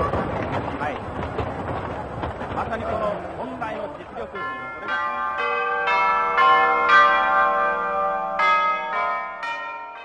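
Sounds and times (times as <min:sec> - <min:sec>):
bells ringing: 0:03.6 - 0:10.0.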